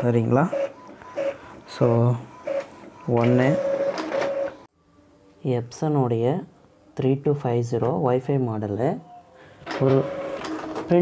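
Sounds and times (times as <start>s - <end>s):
printer motors whirring: 0.0s - 4.7s, 9.7s - 11.0s.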